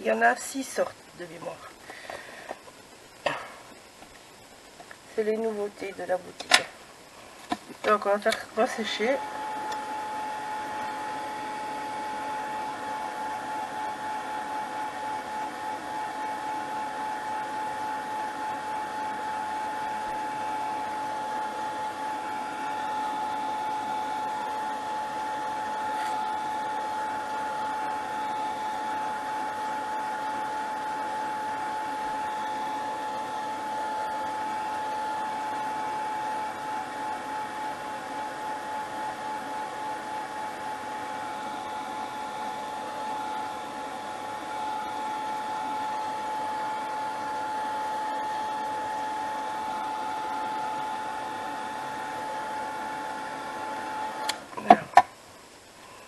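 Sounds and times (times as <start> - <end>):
hair dryer whining: 0.0 - 6.4, 7.4 - 54.5.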